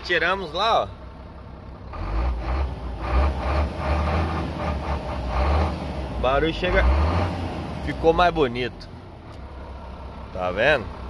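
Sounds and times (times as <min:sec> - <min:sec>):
diesel engine rumbling: 0:00.0 - 0:11.0.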